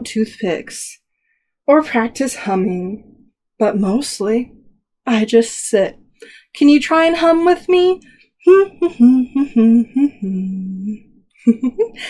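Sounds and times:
woman humming a tune: 0:08.5 - 0:11.9.

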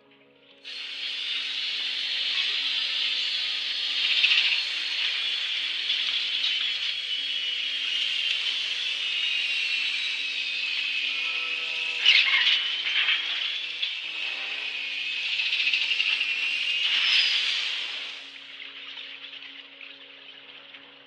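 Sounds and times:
loud rushing hiss: 0:00.7 - 0:18.3.

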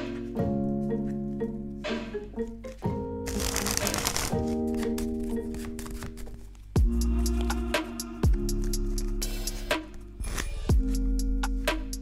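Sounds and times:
background music with sustained notes: 0:00.0 - 0:12.0
playing cards riffling: 0:03.3 - 0:06.7.

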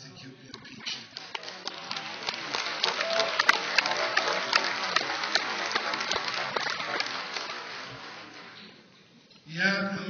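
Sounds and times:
audience applauding: 0:00.8 - 0:08.8.

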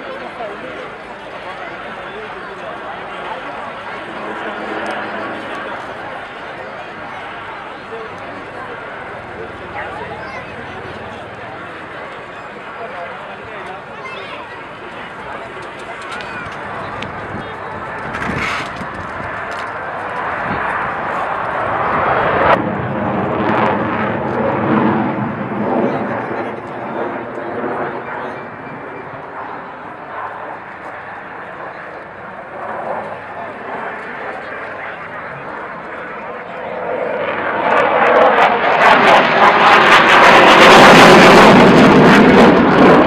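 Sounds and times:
jet engine passing: 0:00.0 - 0:43.0.

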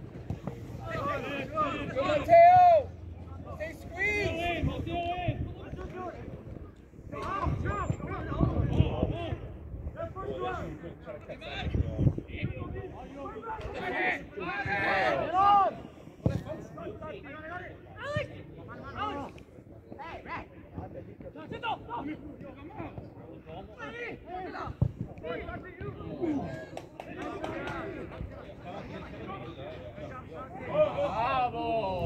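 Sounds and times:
players shouting: 0:00.4 - 0:06.3, 0:13.1 - 0:16.0, 0:23.7 - 0:32.0.

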